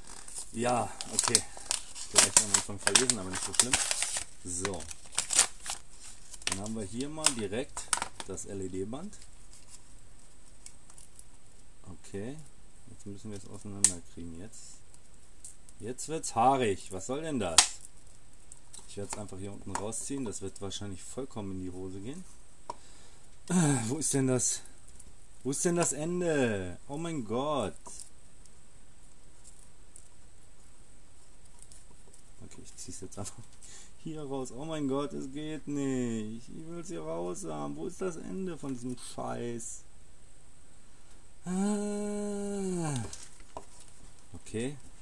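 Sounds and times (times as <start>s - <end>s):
plastic bag rustling: 0.0s - 11.3s
background hiss: 0.0s - 45.0s.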